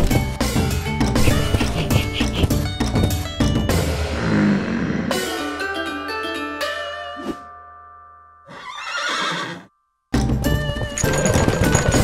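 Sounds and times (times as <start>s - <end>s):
cartoon horse whinny: 8.5s - 9.7s.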